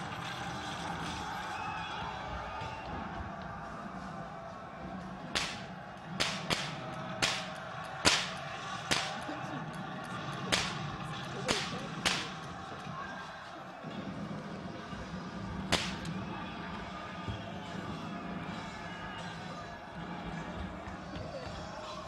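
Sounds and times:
gunfire cracks: 0:05.4 - 0:09.3, 0:10.5 - 0:10.9, 0:11.5 - 0:12.5, 0:15.7 - 0:16.1.

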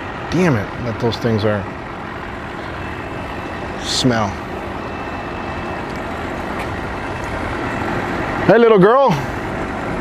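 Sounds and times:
outboard boat motors idling: 0:00.0 - 0:10.0.

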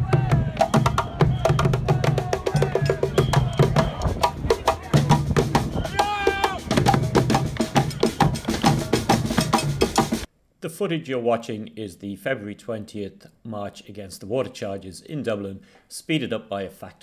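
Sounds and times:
sped-up crowd voices: 0:00.0 - 0:10.0
sped-up street drumming band: 0:00.0 - 0:10.3.

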